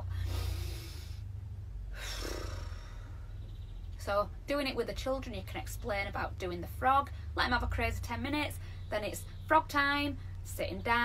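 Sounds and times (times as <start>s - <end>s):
woman breathing deeply: 0.0s - 3.4s
steady low rumble: 0.0s - 11.0s.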